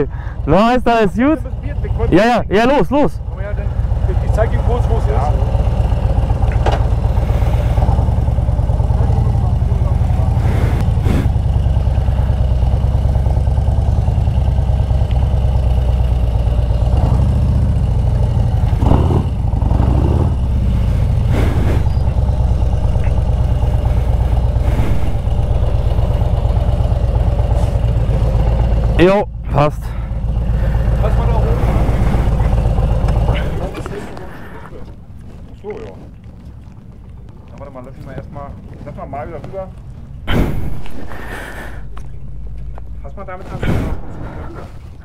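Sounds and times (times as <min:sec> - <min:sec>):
motorcycle engine running at low revs: 0:00.0 - 0:34.3, 0:41.8 - 0:43.4.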